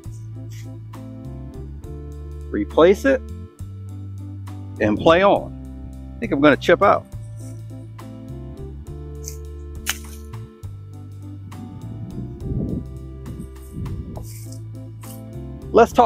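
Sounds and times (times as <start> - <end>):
background music with bass and beat: 0.0 - 16.0
sharp click: 9.2 - 10.4.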